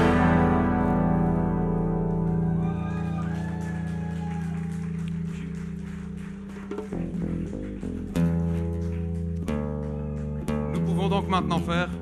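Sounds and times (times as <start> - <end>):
plucked guitar notes: 0.0 - 2.7, 7.0 - 12.0
guitar and bass chord ringing: 0.0 - 3.1.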